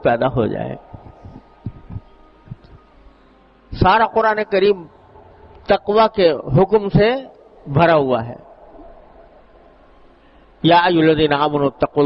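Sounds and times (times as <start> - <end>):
faint steady hum: 0.0 - 12.0
soft low thumps: 0.8 - 2.8.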